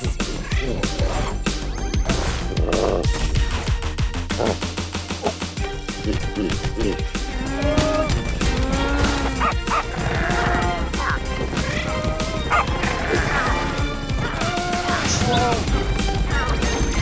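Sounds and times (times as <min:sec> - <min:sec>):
cartoon background music: 0:00.0 - 0:17.0.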